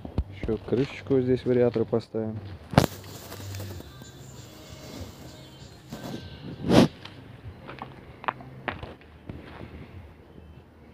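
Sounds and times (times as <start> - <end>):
footsteps crunching on gravel: 0.3 - 5.2, 5.9 - 9.8.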